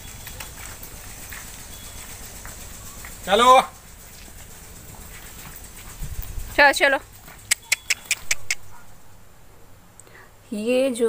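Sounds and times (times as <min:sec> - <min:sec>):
sharp clicks: 0:07.4 - 0:08.7.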